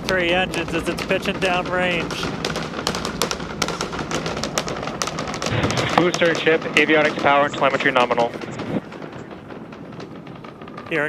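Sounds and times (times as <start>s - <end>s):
rocket exhaust crackling: 0.0s - 11.0s
steady rushing noise: 0.0s - 11.0s.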